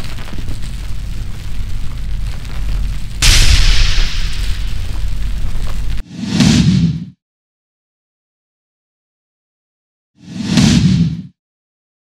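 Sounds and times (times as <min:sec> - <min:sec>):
whoosh with deep rumble: 0:00.0 - 0:06.9.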